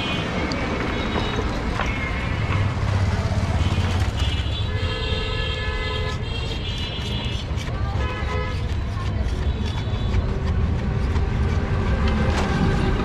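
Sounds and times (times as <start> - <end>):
vehicle horns honking: 3.6 - 8.6.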